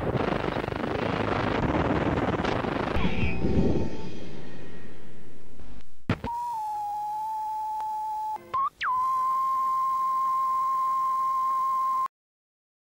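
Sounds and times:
static hiss: 0.0s - 6.9s.

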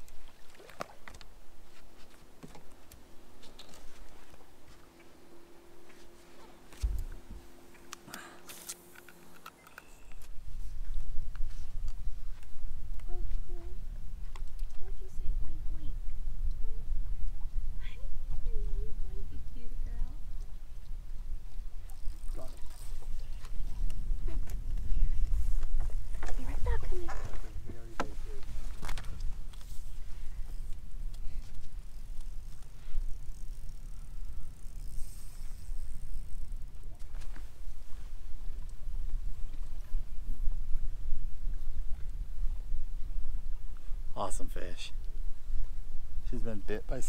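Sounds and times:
wind and water rumble: 0.0s - 47.0s.

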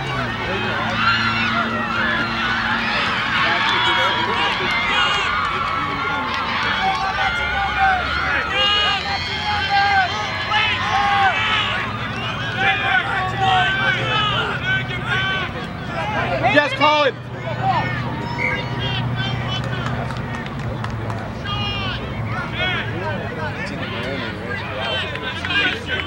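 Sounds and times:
shouts and chatter of crowd: 0.0s - 26.0s.

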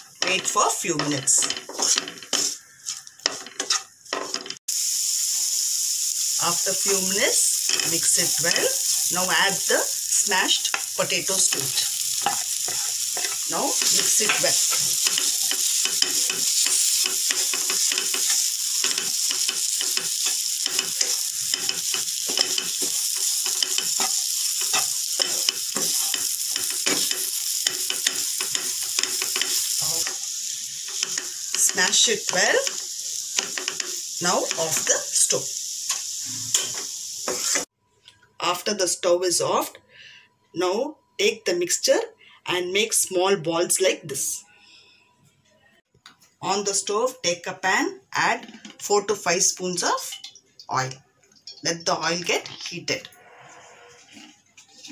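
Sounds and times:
spatula scraping and tapping pan: 0.0s - 4.6s, 10.6s - 30.2s, 30.9s - 34.0s
vegetables sizzling in oil: 0.0s - 37.7s
wooden spatula scraping a pan: 1.2s - 4.6s, 53.1s - 54.9s.

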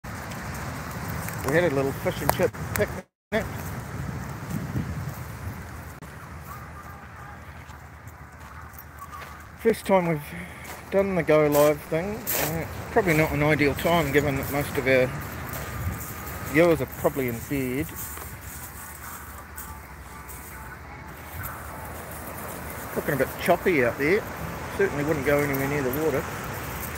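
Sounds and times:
wind blowing across microphone: 0.1s - 9.6s, 12.1s - 19.4s.

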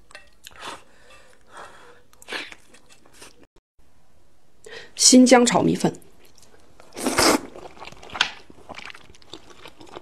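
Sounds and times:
wet chewing: 6.2s - 10.0s.

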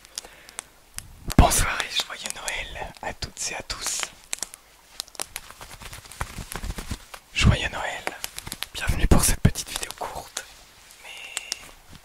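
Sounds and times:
faint clicks: 0.0s - 6.2s, 7.9s - 8.8s, 9.5s - 12.0s
man whispering: 1.3s - 4.2s, 7.3s - 11.7s.

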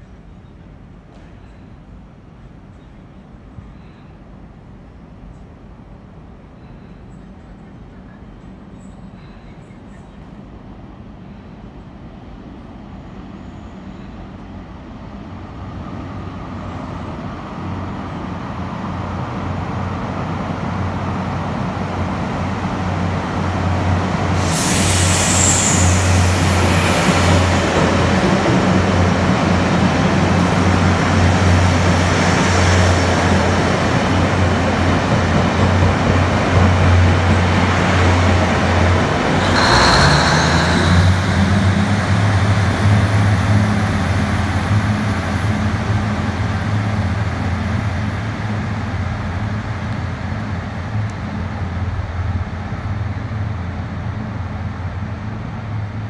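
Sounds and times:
train wheels rushing on rail: 10.3s - 56.0s
diesel engines humming: 37.0s - 46.5s
high tone burst: 39.3s - 43.6s.

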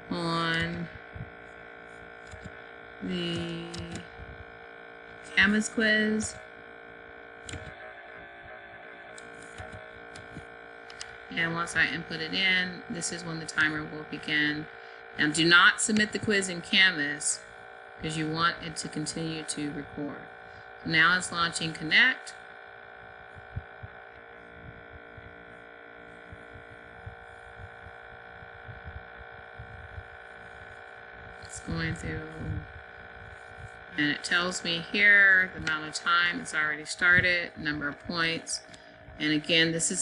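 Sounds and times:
fan hum: 0.0s - 40.0s
voice: 0.1s - 1.3s, 3.0s - 4.4s, 5.3s - 6.4s, 10.9s - 17.4s, 18.0s - 22.4s, 31.4s - 32.8s, 33.9s - 40.0s.

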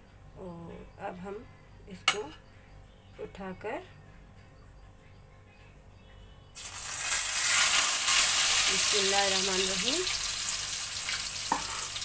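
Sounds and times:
bread frying in hot oil: 6.6s - 12.0s.

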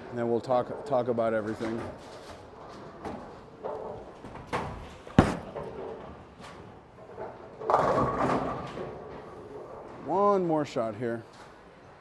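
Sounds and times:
bowling pins clattering: 0.6s - 10.0s
bowling ball rolling: 2.4s - 10.0s
bowling ball thud on lane: 5.2s - 5.6s.

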